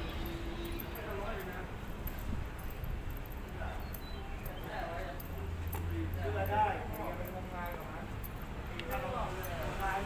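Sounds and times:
footstep clicks: 0.0 - 10.0.

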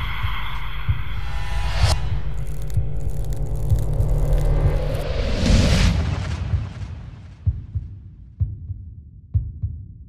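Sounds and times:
low rumble with deep pulses: 0.0 - 8.8
rising whoosh: 0.8 - 7.5.

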